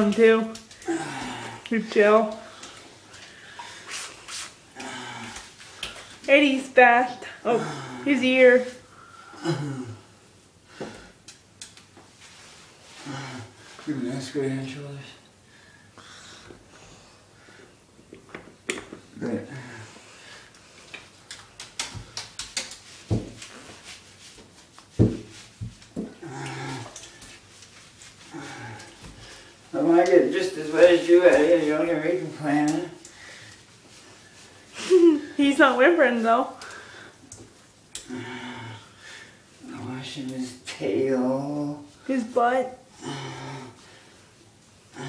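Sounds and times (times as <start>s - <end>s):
hands scrubbing wet dog fur: 3.6s - 4.6s, 21.0s - 33.0s.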